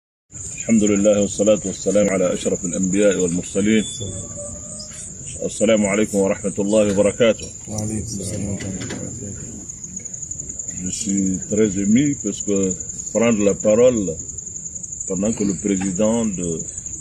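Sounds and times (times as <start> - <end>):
crickets chirping: 0.3 - 17.0
man speaking: 0.6 - 4.4, 5.3 - 9.7, 10.7 - 14.2, 15.1 - 16.7.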